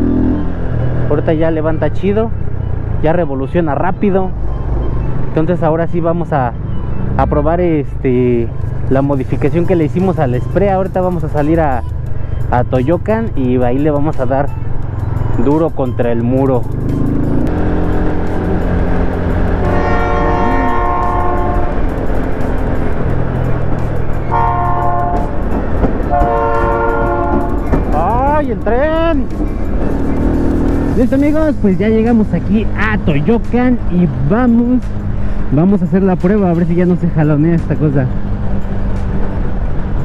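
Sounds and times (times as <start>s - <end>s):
motorcycle engine running: 16.6s - 35.5s
steady low drone: 16.6s - 40.0s
train horn blasts: 19.6s - 21.9s, 24.3s - 25.4s, 26.0s - 27.8s.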